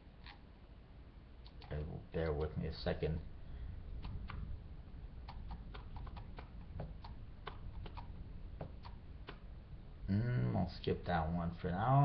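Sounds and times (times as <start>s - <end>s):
steady low hum: 0.0s - 12.0s
computer keyboard clicks: 5.2s - 9.4s.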